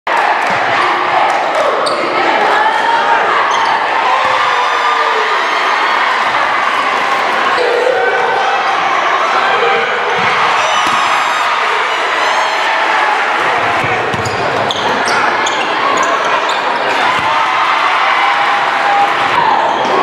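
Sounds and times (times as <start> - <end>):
crowd voices and shouts: 0.1 - 20.0
basketball bouncing on court: 13.6 - 14.8.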